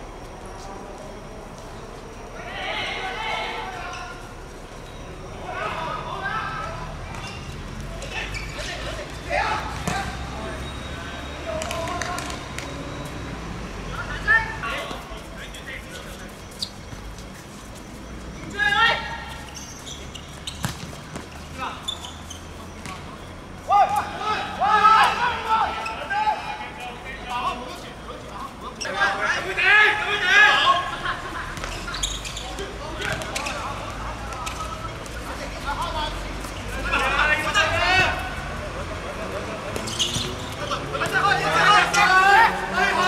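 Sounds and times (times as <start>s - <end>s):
background noise: 0.0s - 43.0s
players shouting: 2.2s - 16.2s, 18.4s - 20.4s, 21.2s - 43.0s.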